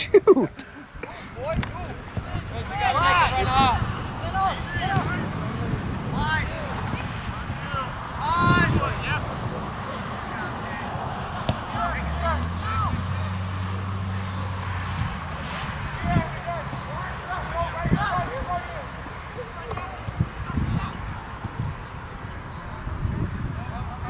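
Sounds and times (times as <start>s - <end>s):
distant players shouting: 1.1s - 21.5s
ball being kicked: 4.9s - 5.2s.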